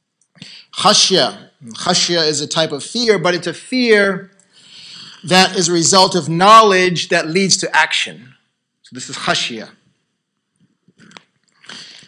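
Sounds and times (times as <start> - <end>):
mouth clicks: 0.3 - 0.6, 11.0 - 12.0
man breathing: 0.4 - 0.8, 4.4 - 5.3, 11.6 - 12.0.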